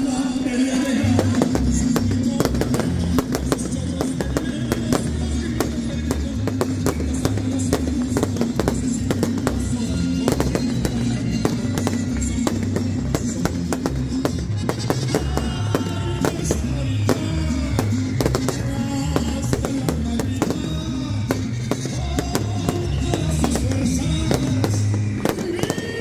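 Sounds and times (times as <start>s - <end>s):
music playing: 0.0s - 26.0s
fireworks bangs and crackles: 0.9s - 26.0s.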